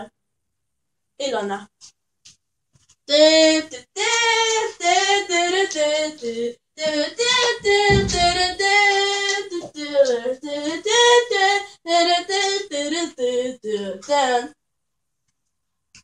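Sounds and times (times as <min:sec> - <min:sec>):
child singing unaccompanied: 0:03.1 - 0:14.6.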